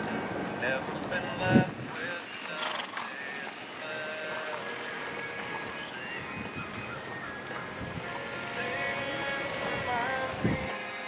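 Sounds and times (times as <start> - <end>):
pop song with singing: 0.0 - 11.0
steady outdoor hiss: 0.0 - 11.0.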